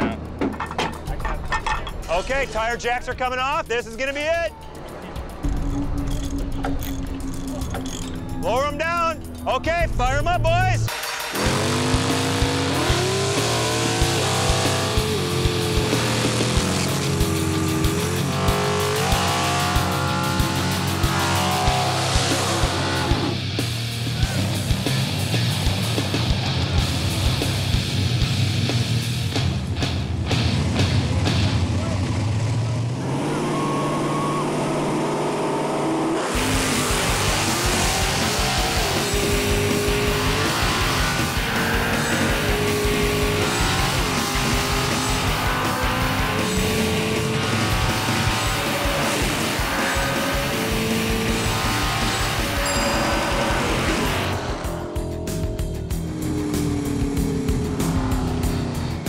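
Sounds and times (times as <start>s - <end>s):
music: 0.0s - 32.3s, 36.2s - 59.0s
drag car engines revving: 0.0s - 59.0s
tyres squealing in burnouts: 11.3s - 23.4s, 32.9s - 54.6s.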